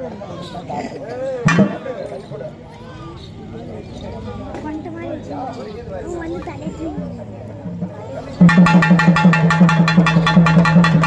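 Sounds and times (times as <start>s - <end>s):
drums beaten with sticks: 1.5s - 1.9s, 6.6s - 11.0s.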